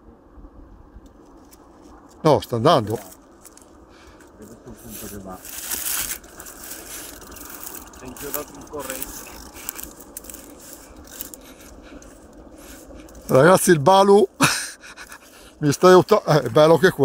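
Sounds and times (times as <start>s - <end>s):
crackly scraping and rustling: 0.8s - 17.0s.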